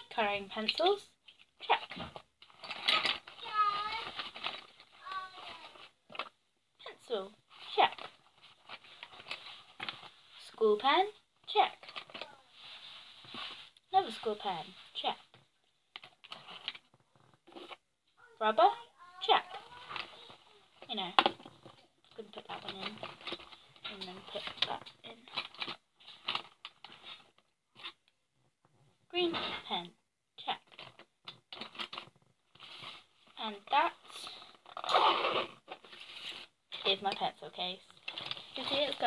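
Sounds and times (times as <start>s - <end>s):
pencil case rustling: 1.8s - 6.4s, 7.5s - 10.3s, 11.7s - 15.3s, 16.0s - 17.8s, 19.3s - 28.0s, 30.6s - 37.0s, 38.0s - 39.0s.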